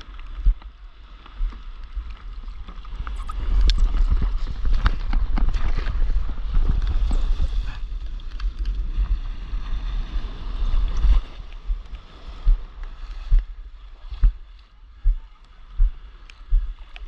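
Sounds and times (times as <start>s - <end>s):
low microphone rumble: 0.0s - 17.0s.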